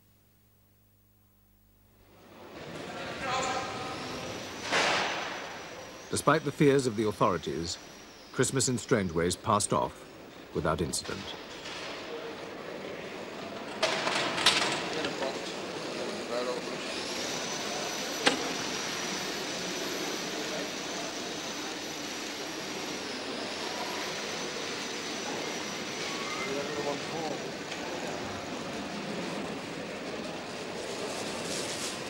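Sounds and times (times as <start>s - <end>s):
faint high-pitched whine: 0.0s - 32.0s
steady hiss: 3.8s - 11.6s
indistinct voices: 6.1s - 13.6s.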